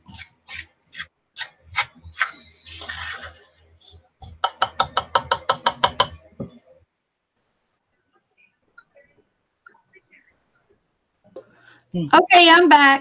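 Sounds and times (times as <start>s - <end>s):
pet bird chirping: 1.7s - 3.0s.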